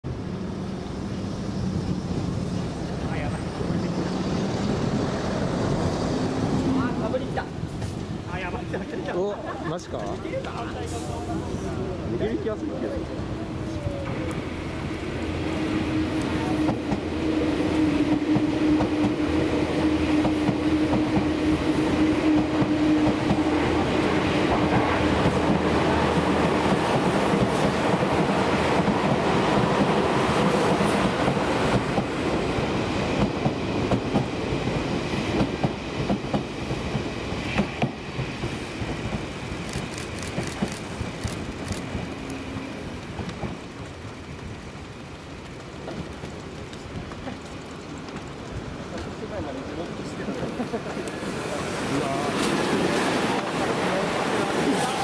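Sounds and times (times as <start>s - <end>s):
second train passing: 0.0s - 55.0s.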